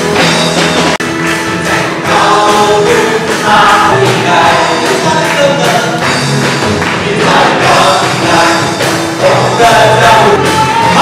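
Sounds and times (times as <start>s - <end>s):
live band with guitars and drums: 0.0s - 11.0s
congregation singing: 1.2s - 11.0s.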